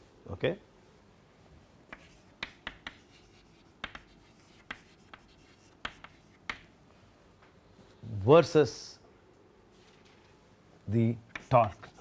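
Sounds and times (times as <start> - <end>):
chalk tapping and scraping on blackboard: 1.9 - 6.7, 11.2 - 12.0.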